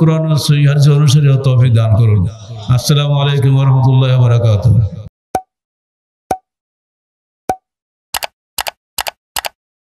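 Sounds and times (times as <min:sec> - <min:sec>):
pop sound effects with tone: 0:05.4 - 0:05.6, 0:06.3 - 0:06.6, 0:07.5 - 0:09.2
paired clicks: 0:08.2 - 0:09.6.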